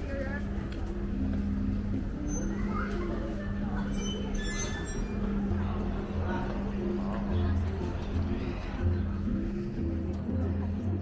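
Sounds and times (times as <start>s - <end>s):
background music: 0.0s - 11.0s
passers-by talking: 0.0s - 11.0s.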